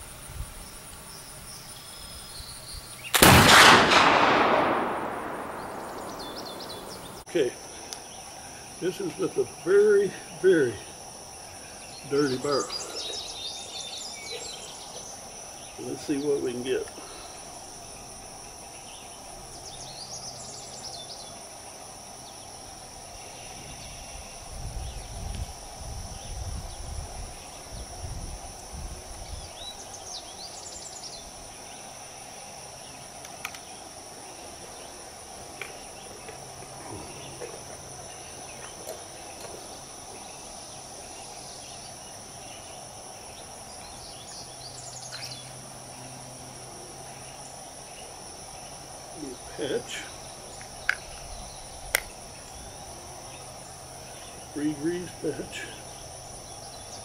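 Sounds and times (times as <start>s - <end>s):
insects droning: 0.0s - 57.0s
low rumbling noise: 3.2s - 7.2s
bird chirps: 4.8s - 7.3s, 43.8s - 45.6s.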